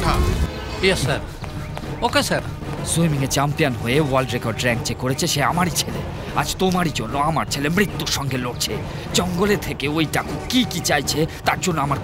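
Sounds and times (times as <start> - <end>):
soundtrack music: 0.0 - 12.0.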